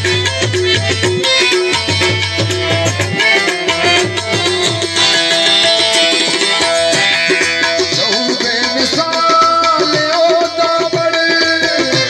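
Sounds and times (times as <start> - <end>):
folk music through a pa: 0.0 - 12.0
hand drum beat: 0.0 - 12.0
harmonium: 0.0 - 12.0.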